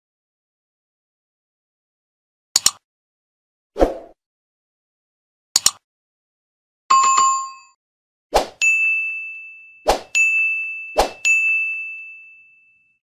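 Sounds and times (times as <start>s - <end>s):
bell ding: 6.9s - 7.8s, 8.6s - 13.0s.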